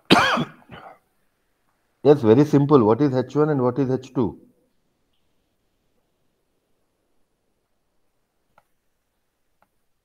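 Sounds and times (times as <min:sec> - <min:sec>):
person clearing throat: 0:00.0 - 0:01.0.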